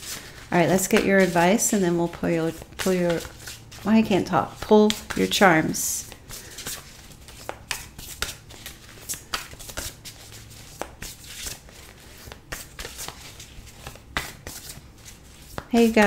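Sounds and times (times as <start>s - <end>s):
cards being shuffled: 0.0s - 16.0s.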